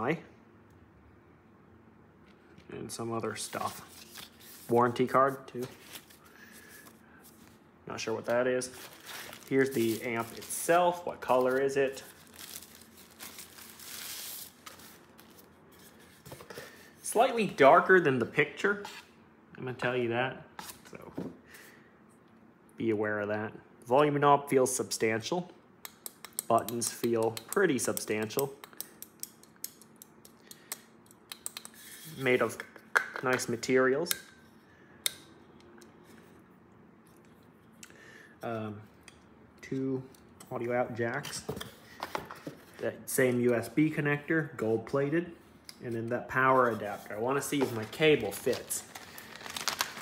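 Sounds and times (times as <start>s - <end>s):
tissue paper rustling: 8.7s - 15.5s, 46.9s - 50.0s.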